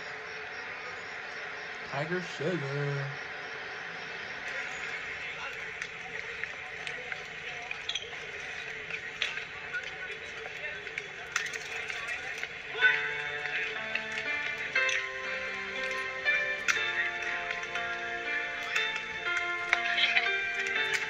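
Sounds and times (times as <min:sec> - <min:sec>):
song music: 0:12.4 - 0:21.0.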